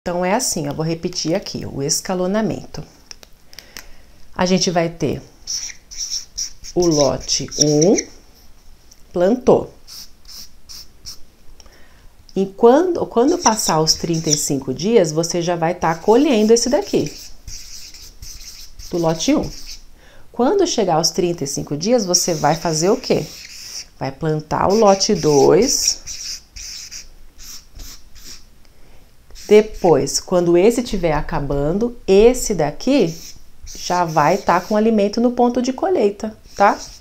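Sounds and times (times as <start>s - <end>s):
felt-tip marker squeaking on paper: 5.5s - 8.1s, 9.9s - 11.2s, 13.2s - 14.6s, 15.8s - 19.8s, 21.8s - 28.4s, 29.3s - 30.1s, 32.9s - 35.0s, 36.4s - 37.0s.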